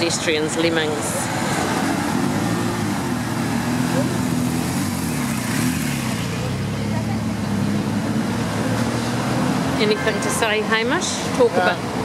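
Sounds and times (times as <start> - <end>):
traffic on cobblestones: 0.0 - 12.0.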